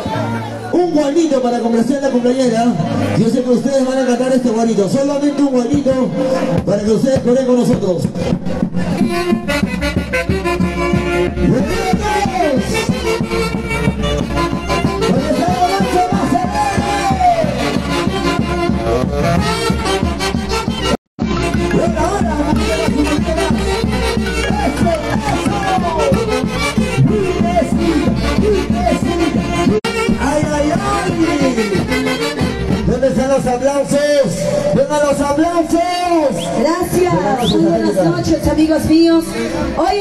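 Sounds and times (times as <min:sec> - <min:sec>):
steady drum beat: 0:05.7 - 0:33.6
saxophone ensemble playing: 0:08.8 - 0:33.4
held horn notes: 0:09.0 - 0:33.4.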